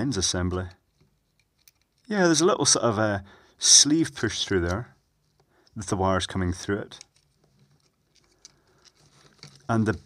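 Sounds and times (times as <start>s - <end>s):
small clicks and rubs of parts: 0.5s - 2.1s, 4.6s - 5.8s, 6.9s - 10.0s.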